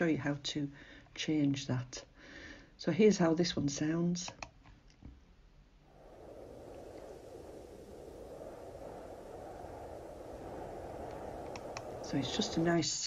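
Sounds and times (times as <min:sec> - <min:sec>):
cold wind: 0:05.6 - 0:13.0.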